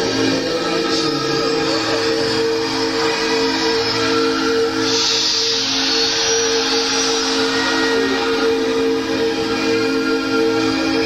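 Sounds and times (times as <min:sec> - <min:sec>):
hissing treble swell: 0:00.0 - 0:11.0.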